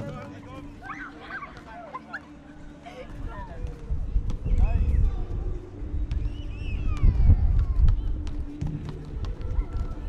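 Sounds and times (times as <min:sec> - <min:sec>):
people shouting: 0:00.8 - 0:02.2
ball bouncing: 0:07.8 - 0:10.0.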